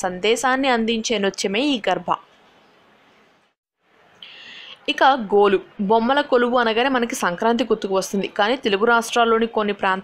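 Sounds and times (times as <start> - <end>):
woman narrating: 0.0 - 2.4, 4.7 - 10.0
faint hiss: 2.4 - 5.3
breathy intake of breath: 4.2 - 4.8.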